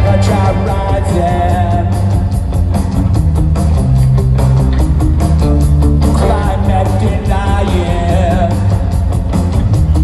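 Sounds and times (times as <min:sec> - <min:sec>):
electric guitars: 0:00.0 - 0:10.0
steady drumbeat: 0:00.0 - 0:10.0
sustained bass: 0:00.0 - 0:10.0.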